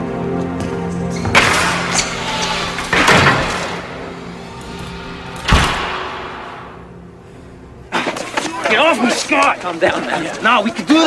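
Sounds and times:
soft background music: 0.0s - 11.0s
loud crashing bangs: 1.4s - 7.0s.

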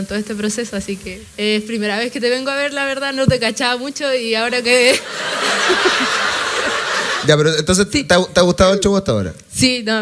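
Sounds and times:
audience laughing: 4.9s - 7.4s.

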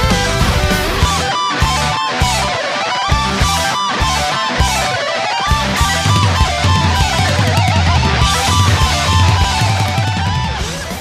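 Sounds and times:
chugging rhythm guitar: 0.0s - 11.0s
distorted lead guitar with vibrato: 0.0s - 11.0s.

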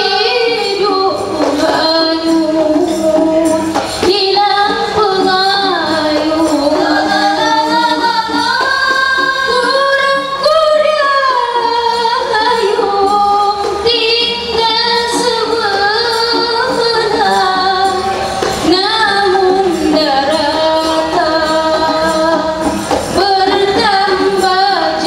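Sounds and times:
frame drums beating: 0.0s - 25.0s
woman singing into a microphone: 0.0s - 25.0s.

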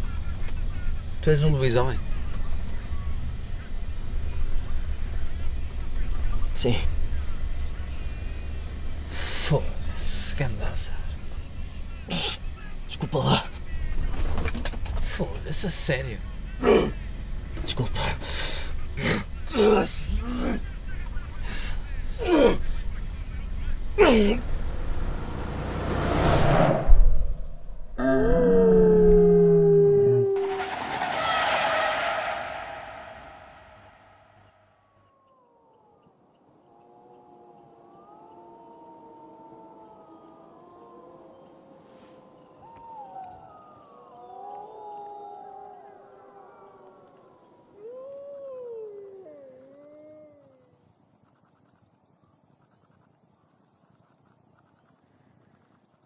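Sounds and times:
animals howling: 28.0s - 33.4s, 34.9s - 51.0s
loud burst of noise: 30.4s - 34.5s.

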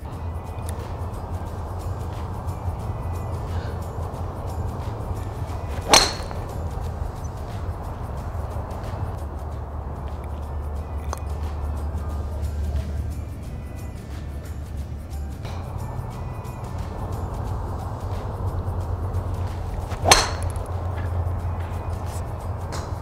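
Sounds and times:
background music: 0.0s - 23.0s
golf club striking ball: 0.1s - 23.0s.

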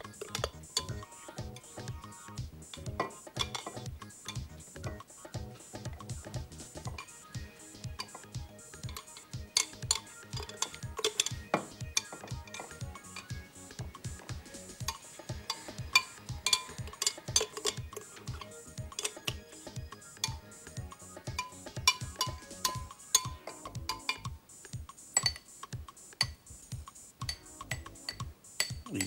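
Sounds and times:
background music with steady beat: 0.0s - 29.0s
metal spoon clinking on glass: 0.2s - 1.0s, 3.0s - 4.4s, 7.9s - 13.4s, 14.9s - 19.5s, 21.4s - 24.3s, 25.2s - 25.5s, 27.2s - 29.0s.

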